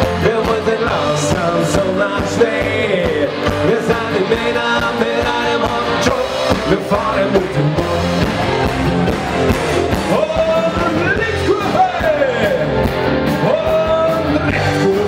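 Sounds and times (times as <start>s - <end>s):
live band playing rock music: 0.0s - 15.0s
person singing: 0.0s - 15.0s.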